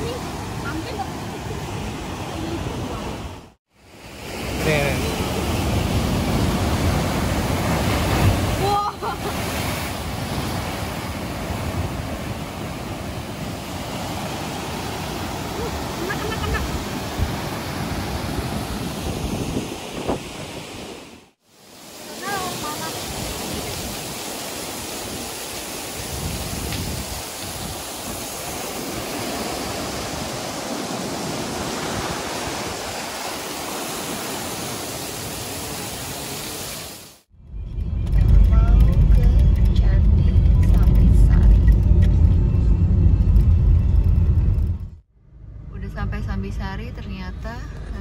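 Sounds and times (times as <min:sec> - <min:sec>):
breaking surf: 0:00.0 - 0:37.3
waterfall on rocks: 0:21.5 - 0:37.3
loud low rumble: 0:37.4 - 0:48.0.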